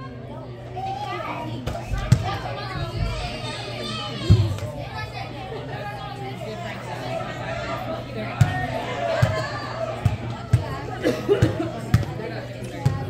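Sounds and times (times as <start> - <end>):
children chattering and calling: 0.0 - 13.0.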